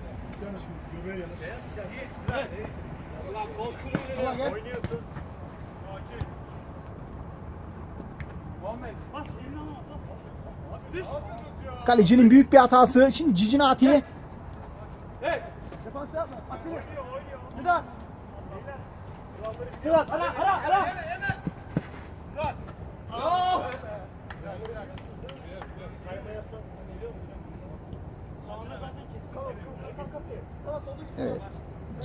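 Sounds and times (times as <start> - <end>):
low background noise: 0.0 - 32.0
footballers shouting: 2.2 - 6.4, 8.6 - 14.2, 14.8 - 24.9.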